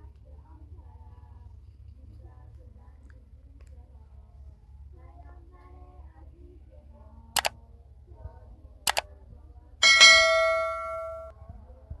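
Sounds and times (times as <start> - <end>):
bright bell ding: 9.8 - 11.3.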